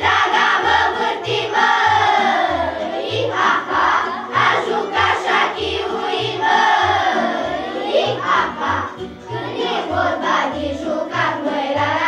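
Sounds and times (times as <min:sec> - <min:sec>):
children's choir singing: 0:00.0 - 0:12.0
instrumental backing with bass line: 0:00.0 - 0:12.0.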